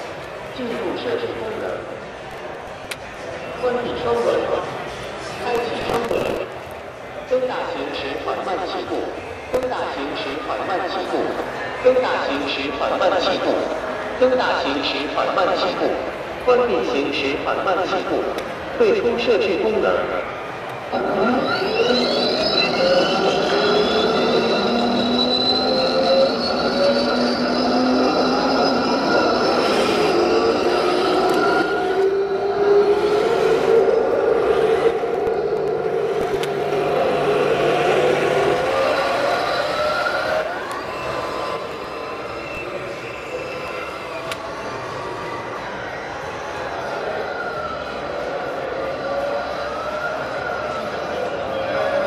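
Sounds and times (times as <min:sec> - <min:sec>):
drive motors and tracks: 0:19.9 - 0:47.0
turbine engine whine: 0:20.0 - 0:51.6.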